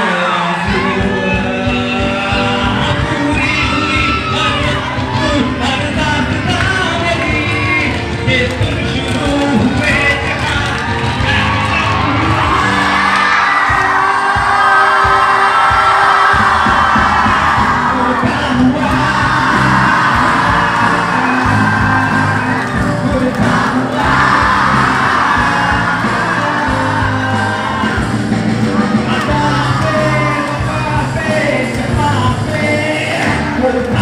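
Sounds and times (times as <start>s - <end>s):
audience cheering and whooping: 0.0s - 34.0s
band playing with singing: 0.0s - 34.0s.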